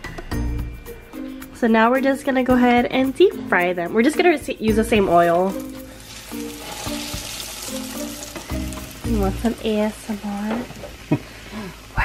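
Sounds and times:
food sizzling in hot oil: 0:04.7 - 0:12.0.

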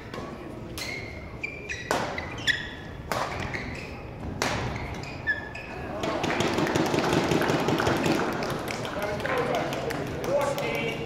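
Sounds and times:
shoe squeaks on court floor: 0:00.7 - 0:05.9
rackets hitting shuttlecock: 0:01.8 - 0:02.3, 0:03.0 - 0:05.1, 0:05.9 - 0:10.8.

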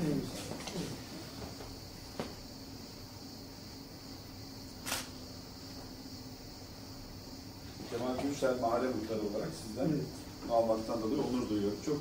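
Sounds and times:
faint hum and hiss: 0:00.0 - 0:12.0.

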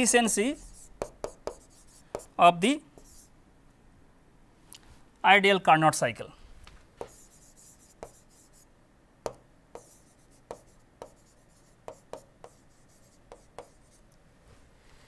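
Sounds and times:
stylus scratchy strokes: 0:00.3 - 0:02.3, 0:07.0 - 0:08.7, 0:09.8 - 0:14.1
stylus tapping on tablet screen: 0:01.0 - 0:02.3, 0:07.0 - 0:08.3, 0:09.2 - 0:14.0.

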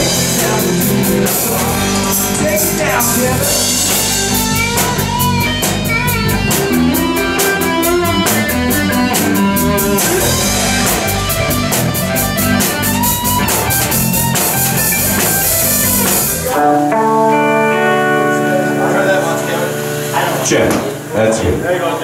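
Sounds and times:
live rock band playing: 0:00.0 - 0:22.0.

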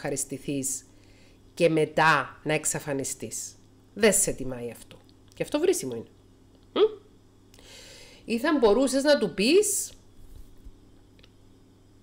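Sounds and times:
woman's questioning mm: 0:06.7 - 0:07.1
faint breath drawn in: 0:07.6 - 0:08.2.

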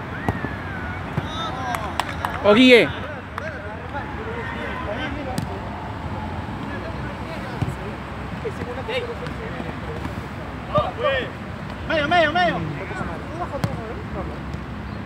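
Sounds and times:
distant players calling: 0:00.0 - 0:15.0.

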